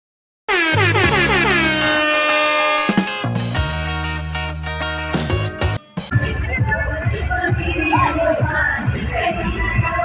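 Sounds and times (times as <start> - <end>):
air horn blasts: 0.5 - 3.3
held synth chord: 0.5 - 6.1.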